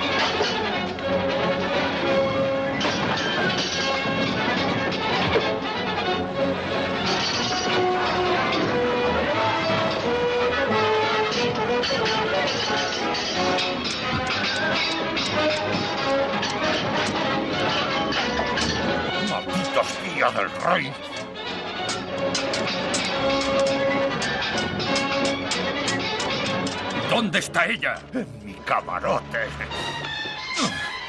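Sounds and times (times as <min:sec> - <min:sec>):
orchestral film music: 0:00.0 - 0:31.0.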